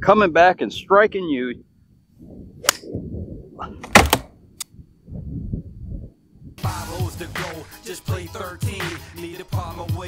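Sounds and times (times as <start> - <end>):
wind rumbling on microphone: 0.0 - 6.8.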